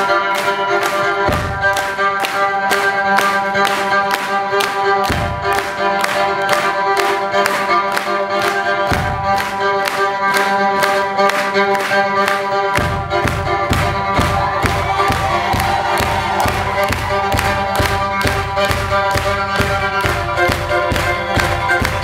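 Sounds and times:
amplified fiddle bow strokes: 0.0 - 22.0.

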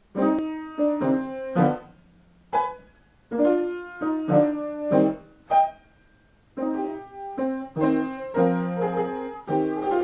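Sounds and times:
piano chords ringing: 0.0 - 10.0.

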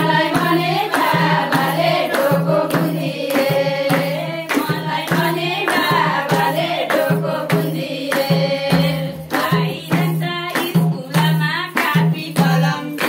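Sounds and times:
hand clapping: 0.0 - 13.0
hand drum beat: 0.0 - 13.0
women singing a folk song: 0.0 - 13.0.

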